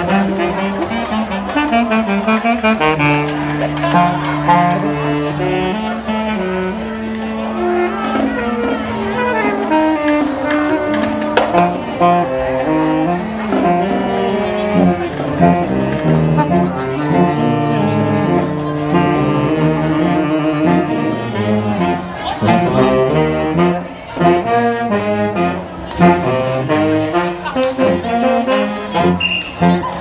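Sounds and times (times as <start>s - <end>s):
saxophones playing a tune: 0.0s - 30.0s.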